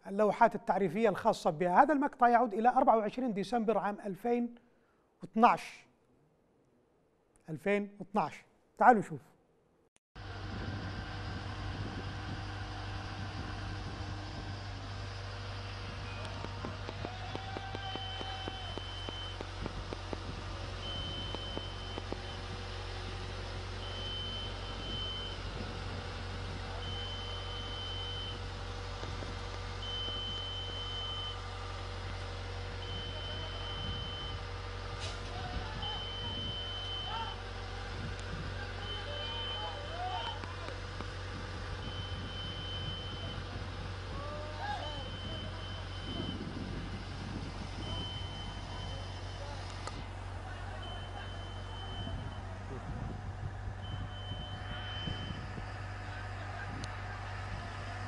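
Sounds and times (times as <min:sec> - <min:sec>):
low engine drone: 0:10.2 - 0:58.0
crane warning alarm beeping: 0:11.2 - 0:17.3, 0:17.9 - 0:56.0
faint voices: 0:15.8 - 0:20.8, 0:43.3 - 0:47.1, 0:47.7 - 0:53.8, 0:55.4 - 0:58.0.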